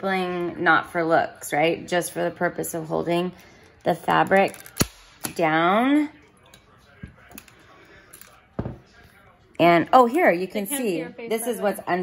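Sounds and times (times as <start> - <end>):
staple gun snapping: 4.4 - 5.4.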